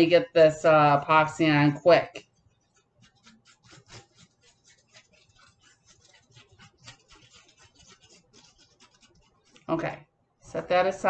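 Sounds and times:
stick stirring resin in cup: 2.1s - 10.0s.

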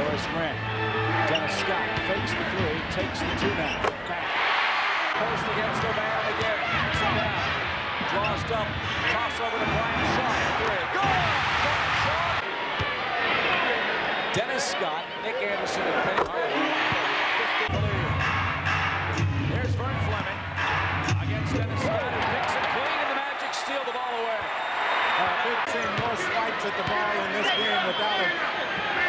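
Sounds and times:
arena crowd noise: 0.0s - 29.0s.

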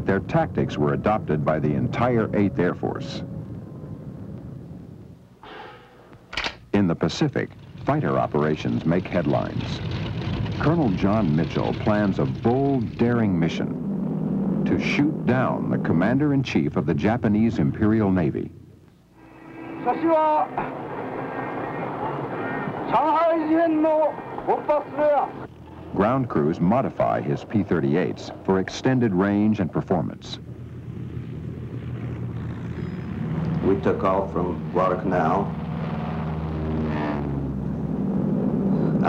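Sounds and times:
noisy engine drone: 0.0s - 39.0s.

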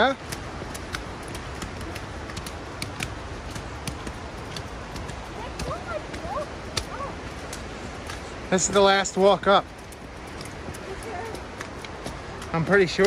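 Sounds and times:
footsteps on stone steps: 0.0s - 13.0s
steady background noise: 0.0s - 13.0s.

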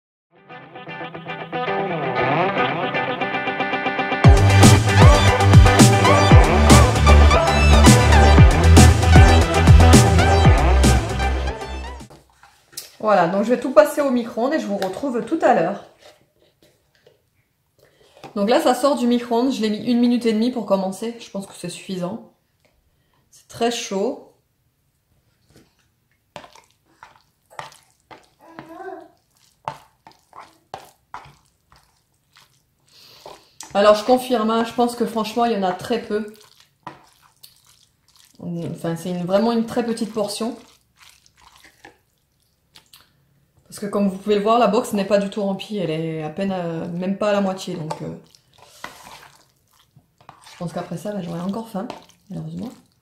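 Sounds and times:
fork scraping through noodles: 26.4s - 33.7s, 36.3s - 38.4s, 39.8s - 42.2s, 47.8s - 53.0s
fork clicking and scraping: 29.6s - 32.0s.

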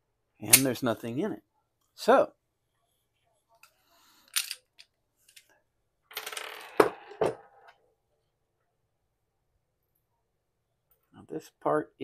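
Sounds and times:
metal parts clinking on a tabletop: 4.3s - 5.5s.

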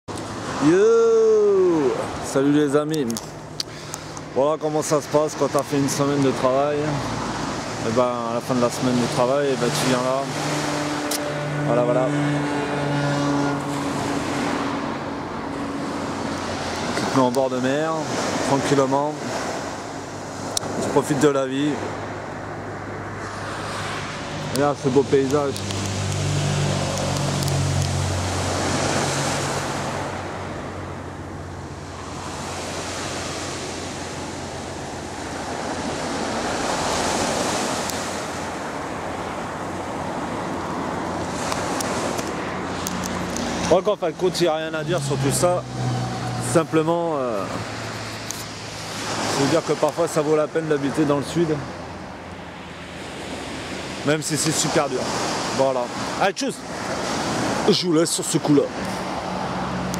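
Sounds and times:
waves on a pebble beach: 0.1s - 59.9s
vehicle engine humming: 6.0s - 17.3s, 21.8s - 49.3s.

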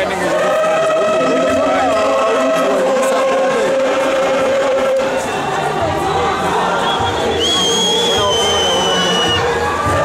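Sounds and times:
choir singing sustained chord: 0.0s - 10.0s.

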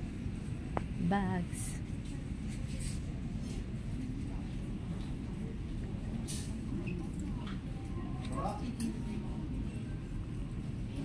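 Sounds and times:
low rumble of shop ambience: 0.0s - 11.0s.

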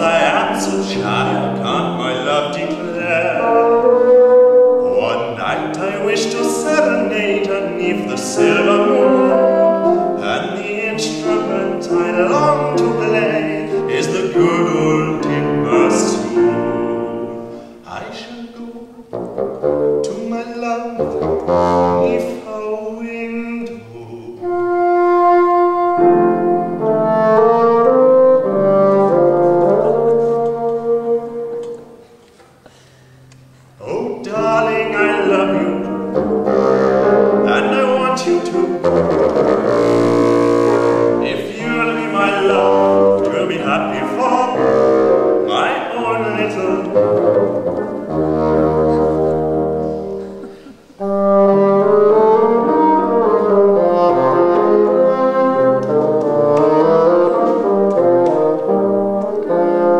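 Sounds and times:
bassoon notes: 0.0s - 59.9s
piano accompaniment: 0.0s - 59.9s.

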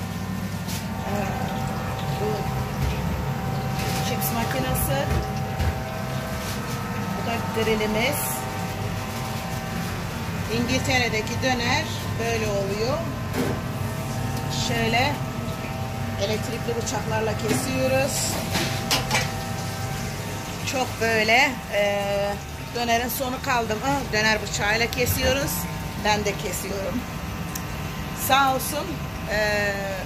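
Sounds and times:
kitchen machinery drone: 0.0s - 30.0s.

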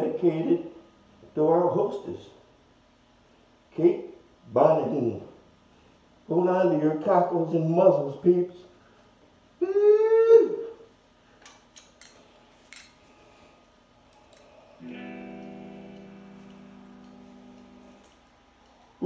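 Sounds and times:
voice-like whoop: 9.6s - 10.8s
guitar chord ringing out: 14.8s - 18.1s.

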